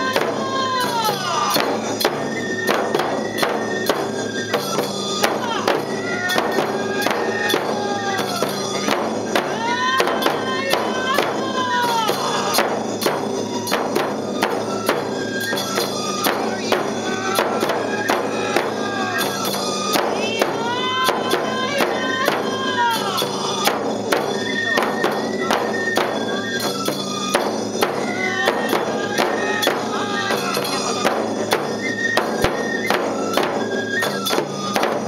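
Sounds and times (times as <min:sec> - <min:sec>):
bamboo flutes playing: 0:00.0 - 0:35.0
hand cymbals clashing: 0:00.0 - 0:35.0
taiko drums beaten: 0:00.0 - 0:35.0.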